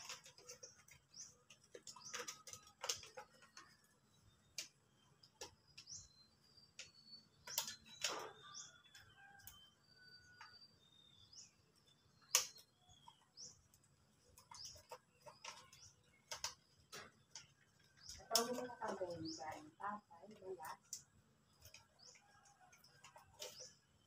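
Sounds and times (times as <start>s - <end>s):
bird chirps: 0.3s - 20.6s.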